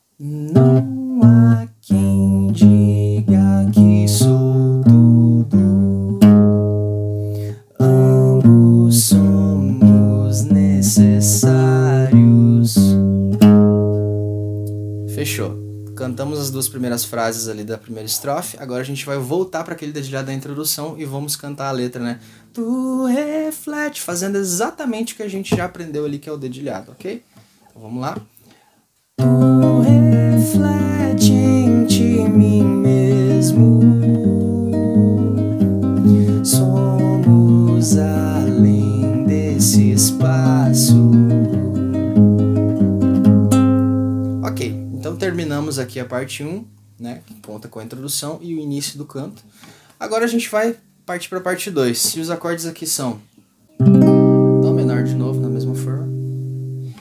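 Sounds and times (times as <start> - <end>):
classical guitar bass note: 0.5 - 17.4, 29.2 - 46.9, 53.8 - 57.0.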